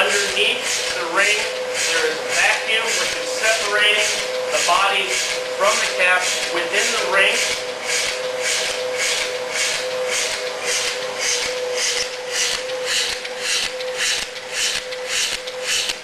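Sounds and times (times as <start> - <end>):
steady machine hum: 0.0 - 16.0.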